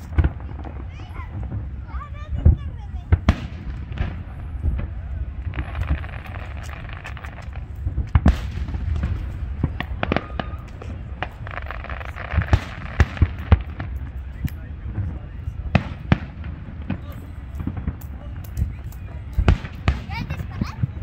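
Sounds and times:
fireworks bursting with sharp bangs: 0.0s - 21.0s.

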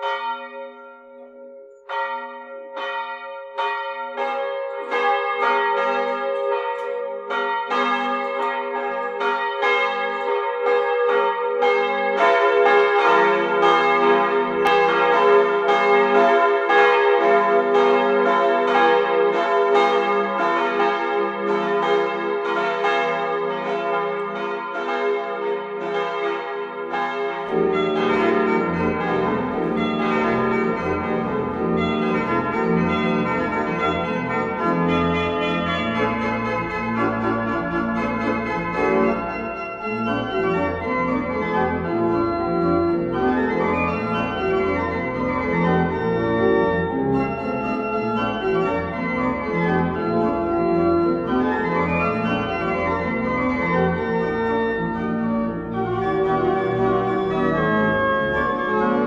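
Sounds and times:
church bells ringing: 0.0s - 59.0s.

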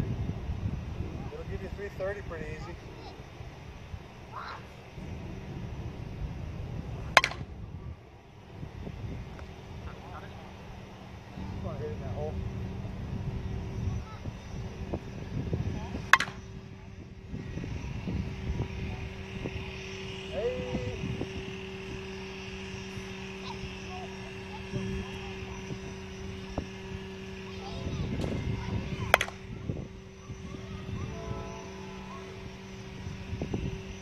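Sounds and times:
low engine-like drone: 0.0s - 34.0s
sharp crack: 7.2s - 7.5s.

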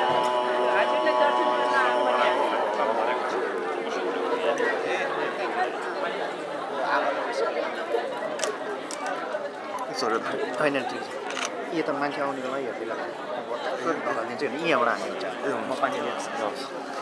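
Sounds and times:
babble of overlapping voices: 0.0s - 17.0s.

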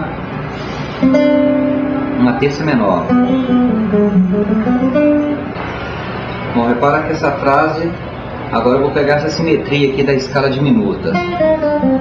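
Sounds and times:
guitar note ringing: 0.8s - 6.8s, 11.1s - 12.0s.

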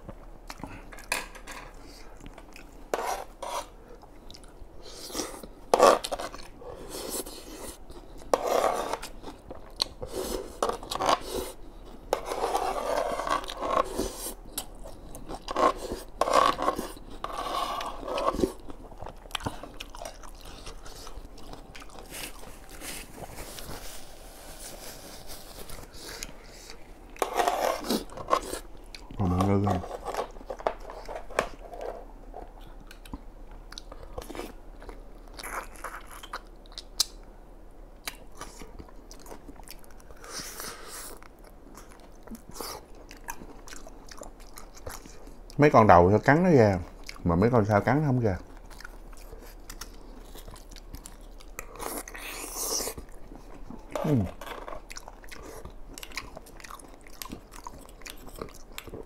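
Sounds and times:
slurping and chewing noodles: 1.8s - 37.1s, 48.4s - 59.0s.

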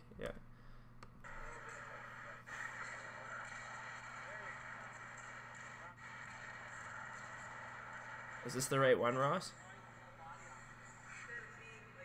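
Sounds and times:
low hum and hiss: 0.0s - 2.6s.

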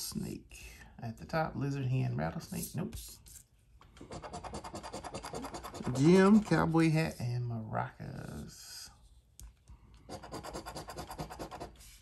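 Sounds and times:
coin scratching lottery ticket: 4.1s - 6.5s, 10.1s - 11.8s.

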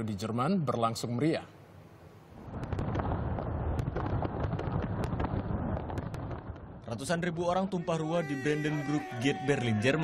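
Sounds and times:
fireworks cracking and popping: 2.4s - 7.0s
low rumble of fireworks bangs: 2.4s - 7.3s.

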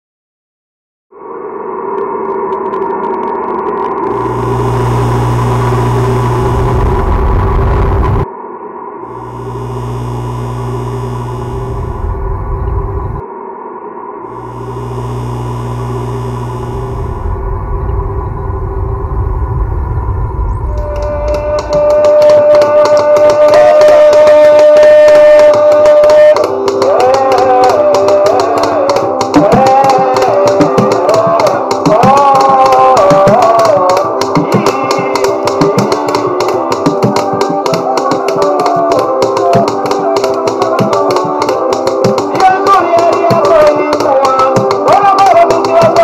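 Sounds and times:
deep hum and hiss: 4.1s - 8.2s, 9.1s - 13.2s, 14.3s - 22.1s.

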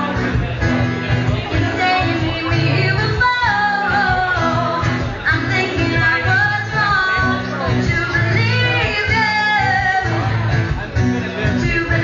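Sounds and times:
guitar accompaniment: 0.0s - 12.0s
woman singing: 1.5s - 10.5s, 11.5s - 12.0s.

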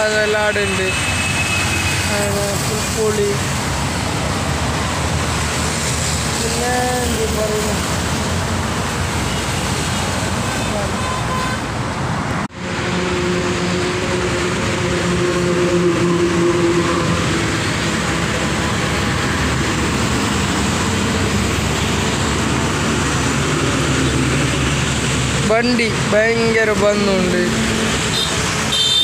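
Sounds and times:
highway traffic passing: 0.0s - 29.0s.

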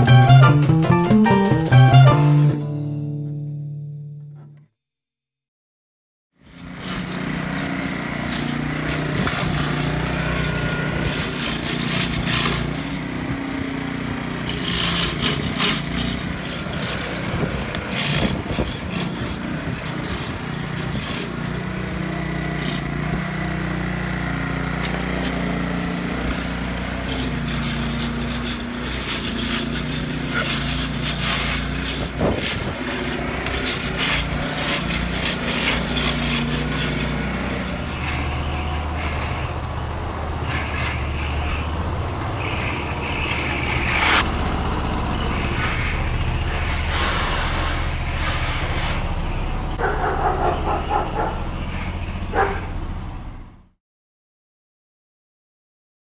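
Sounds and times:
lawn mower engine running: 0.0s - 3.7s, 6.4s - 40.4s, 41.4s - 53.6s
jazz music: 0.0s - 4.5s.

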